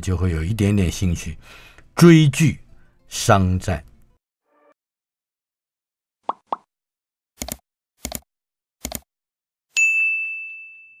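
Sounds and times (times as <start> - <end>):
notification bell ding: 9.8 - 11.0.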